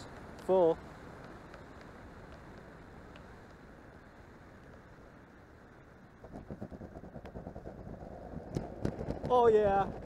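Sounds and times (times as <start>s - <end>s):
model jet wheels rolling on asphalt: 6.2s - 10.0s.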